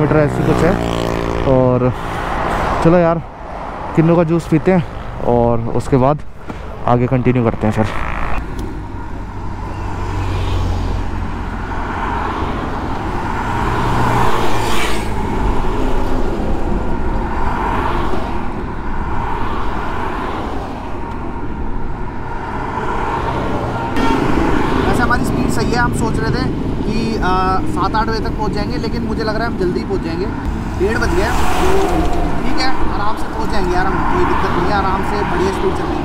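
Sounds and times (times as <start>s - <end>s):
highway traffic rumble: 0.0s - 36.0s
vehicles swishing past: 0.0s - 36.0s.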